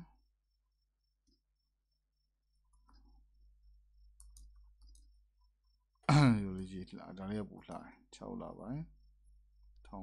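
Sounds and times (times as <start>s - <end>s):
computer keyboard keystrokes: 4.2s - 5.1s.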